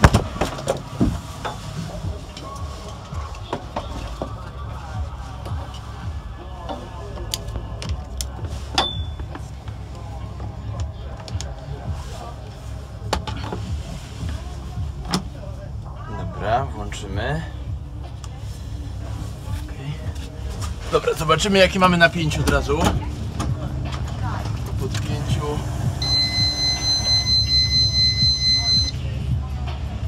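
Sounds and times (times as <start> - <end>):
steady low rumble: 0.0 - 30.0.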